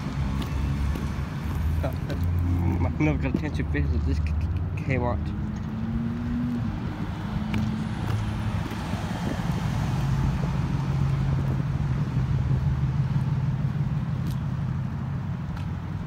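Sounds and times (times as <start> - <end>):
vehicle engine hum: 0.0 - 16.0.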